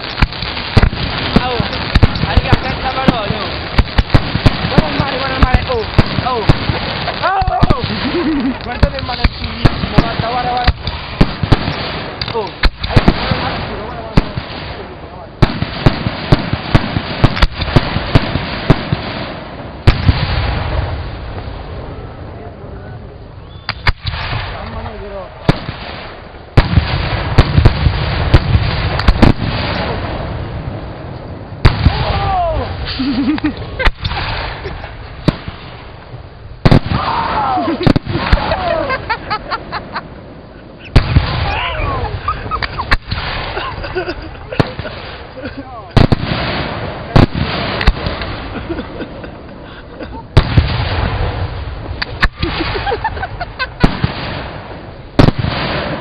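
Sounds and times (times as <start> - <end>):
fireworks bangs: 0.0 - 22.5, 23.5 - 56.0
continuous hiss: 0.0 - 56.0.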